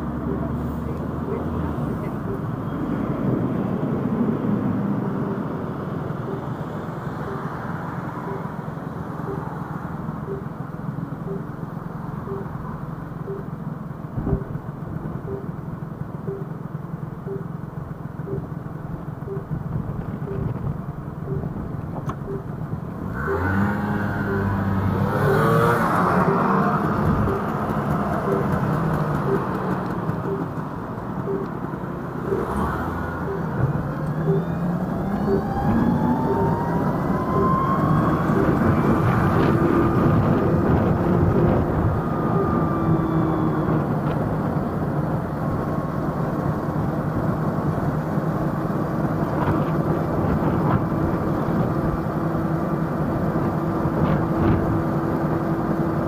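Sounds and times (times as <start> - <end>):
engines accelerating: 0.0 - 13.5, 19.2 - 56.0
traffic hum: 0.0 - 56.0
soft regular ticking: 10.2 - 10.6, 12.2 - 12.5, 13.2 - 13.5, 15.2 - 15.6, 16.2 - 16.6, 17.2 - 17.5, 19.2 - 19.6, 21.2 - 22.6, 26.2 - 31.6, 33.2 - 35.5, 38.4 - 38.7
rising whine: 23.0 - 46.1.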